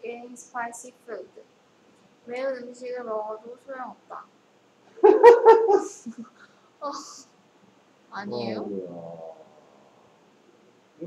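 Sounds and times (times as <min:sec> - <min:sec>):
burst of laughter: 0:05.0 - 0:06.4.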